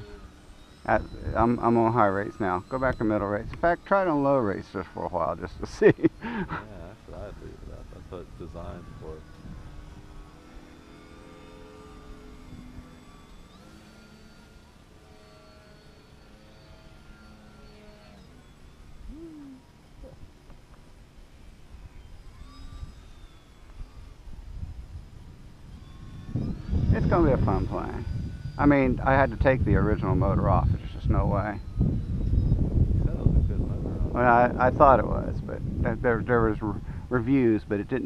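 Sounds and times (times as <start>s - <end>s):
wind rumbling on microphone: 0.0s - 10.5s, 21.6s - 38.0s
model plane motor whining: 0.0s - 38.0s.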